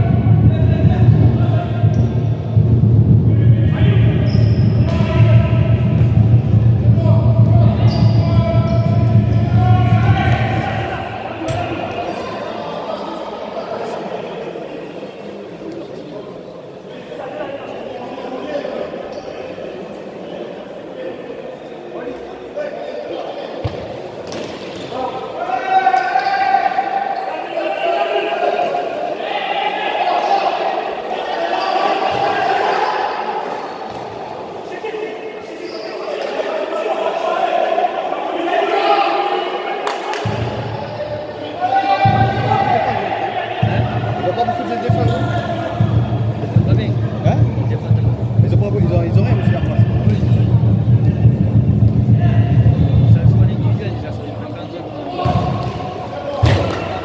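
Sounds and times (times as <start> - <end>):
players calling out: 0.0 - 13.3, 23.6 - 57.0.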